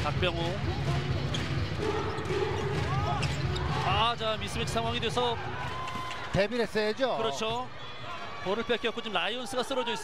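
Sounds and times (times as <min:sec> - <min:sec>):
arena crowd noise: 0:00.0 - 0:10.0
sneaker squeaks: 0:01.3 - 0:03.8.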